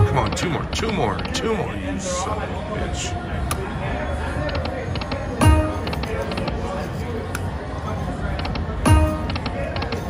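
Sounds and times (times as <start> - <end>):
electronic slot machine tones: 0.0 - 0.6, 5.4 - 6.3, 8.9 - 9.5.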